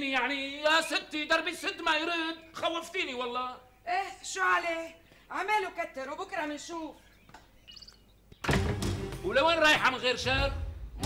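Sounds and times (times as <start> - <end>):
sudden loud bang: 8.4 - 9.3.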